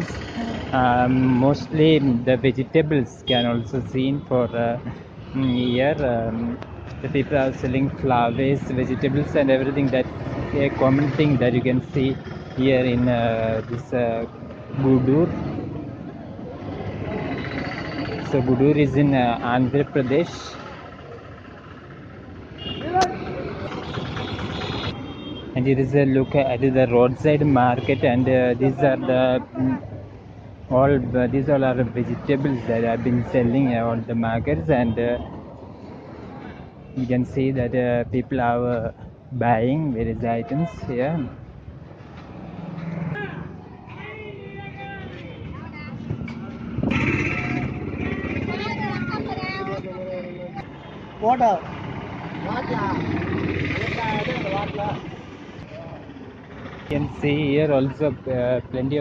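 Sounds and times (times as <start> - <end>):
people talking: 0.0 - 15.4, 18.3 - 20.6, 25.6 - 30.0, 30.7 - 35.2, 37.0 - 41.4, 52.4 - 55.1, 56.9 - 59.0
road traffic: 0.0 - 59.0
motor vehicle engine running: 19.4 - 25.0, 45.4 - 59.0.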